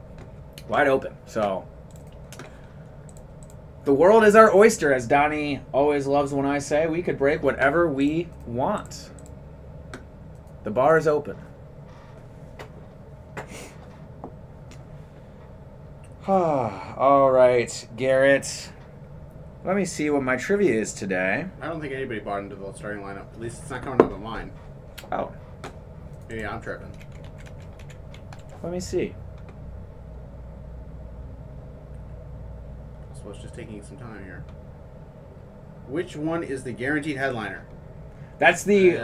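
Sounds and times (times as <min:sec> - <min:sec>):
low room hum: 0:00.0 - 0:39.0
computer keyboard clicks: 0:01.4 - 0:02.5, 0:26.2 - 0:28.6
breathy sigh: 0:16.2 - 0:17.0.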